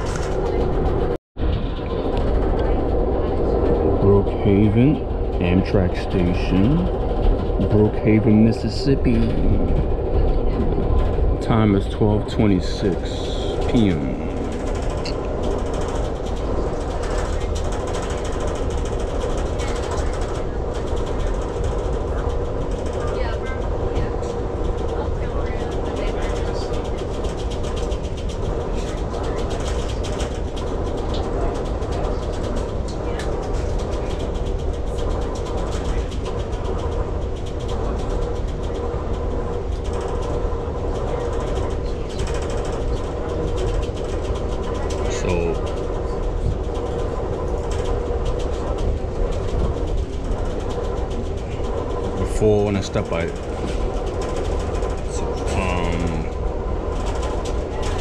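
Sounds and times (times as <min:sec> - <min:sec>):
constant hum: 0:00.0 - 0:58.0
train wheels rumbling on rail: 0:00.0 - 0:58.0.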